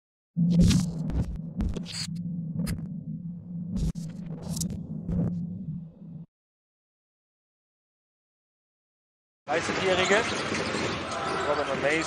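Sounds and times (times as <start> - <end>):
steady low hum: 0.4 - 6.3.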